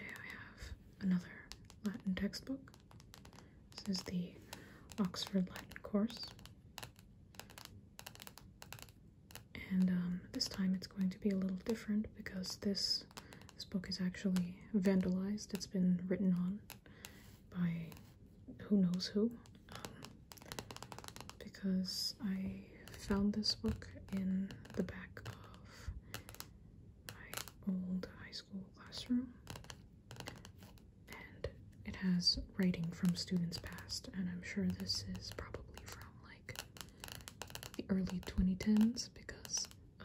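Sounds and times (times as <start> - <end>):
fingernails tapping on card cover: 2.6 - 9.5, 13.1 - 13.6, 19.4 - 21.5, 22.8 - 26.5, 27.2 - 27.6, 29.4 - 31.4, 34.6 - 39.8.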